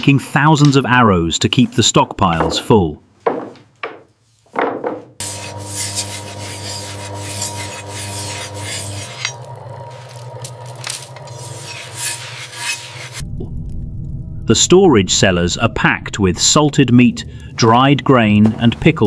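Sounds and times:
steel blade on grindstone: 5.2s - 9.4s, 10.8s - 13.2s
knives shaving wooden shafts: 5.2s - 13.2s
low hum: 7.4s - 19.0s.

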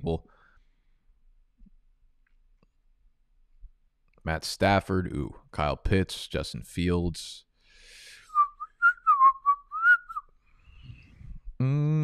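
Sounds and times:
person whistling a tune: 8.2s - 10.3s.

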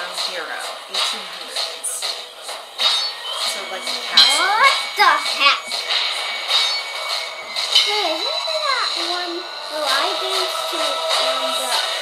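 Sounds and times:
background film score: 0.0s - 12.0s.

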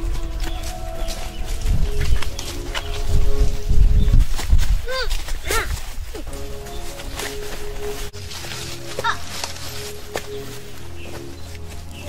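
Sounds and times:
footsteps on leafy dirt path: 0.0s - 12.0s.

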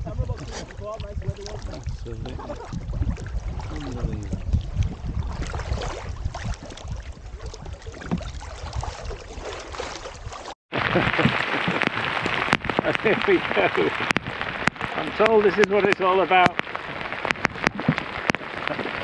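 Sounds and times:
heavy rain hitting water: 0.0s - 9.8s, 10.7s - 19.0s
water lapping against canoe: 0.0s - 19.0s
wind rumbling on microphone: 0.0s - 19.0s.

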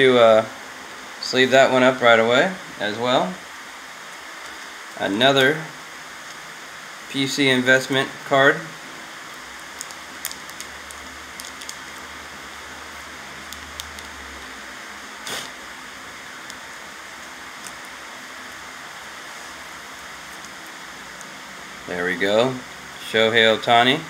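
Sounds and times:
steady background hiss: 0.0s - 24.0s.

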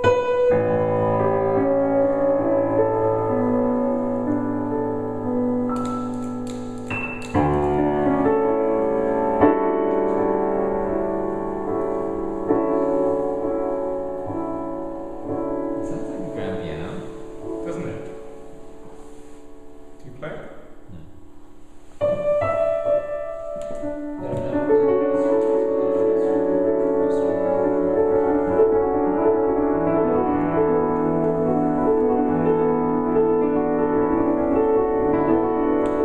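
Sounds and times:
grand piano chords ringing: 0.0s - 36.0s.

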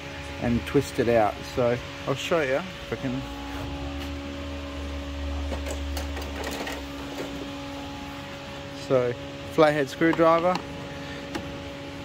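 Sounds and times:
steady mechanical hum: 0.0s - 12.0s.

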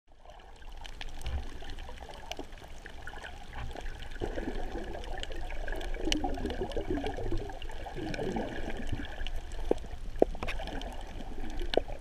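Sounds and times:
water gurgling underwater: 0.1s - 12.0s.

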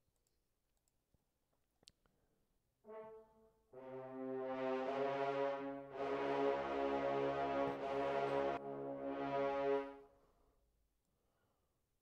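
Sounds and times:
french horn chords: 2.9s - 10.2s.

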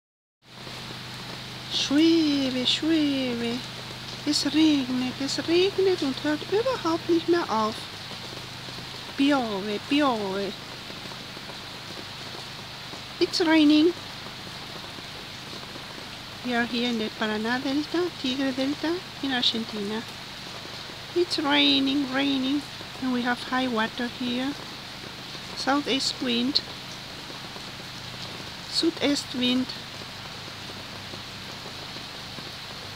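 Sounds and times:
heavy rain falling: 0.4s - 32.9s.

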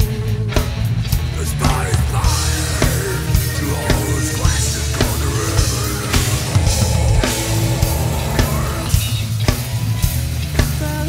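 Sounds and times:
heavy metal band playing: 0.0s - 10.8s
crashing cymbals: 1.6s - 9.4s.

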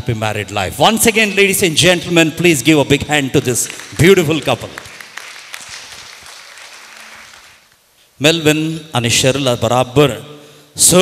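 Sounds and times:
audience applauding: 3.4s - 7.8s.

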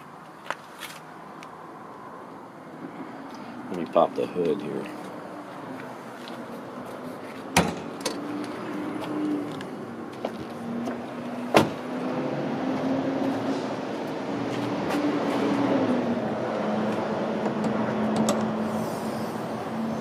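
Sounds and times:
car door thump: 11.5s - 11.8s.

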